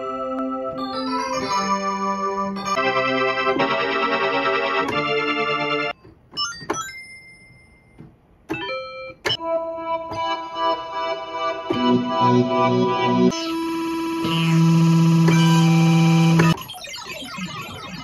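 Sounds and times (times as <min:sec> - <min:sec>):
synthesizer chords: 0:00.0 - 0:06.0, 0:08.5 - 0:18.0
synthesizer blips and sweeps: 0:12.4 - 0:18.0.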